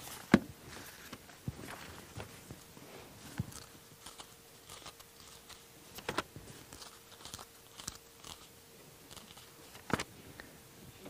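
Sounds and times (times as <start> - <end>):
paper pages rustling: 0.0 - 8.5, 9.1 - 10.1.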